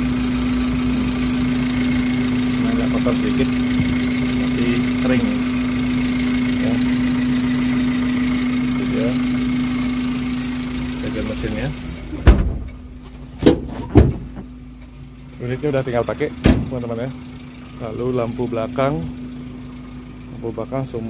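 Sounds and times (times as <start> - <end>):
car engine idling: 0.0 - 21.0
loud thumps: 12.2 - 14.5, 16.4 - 16.8.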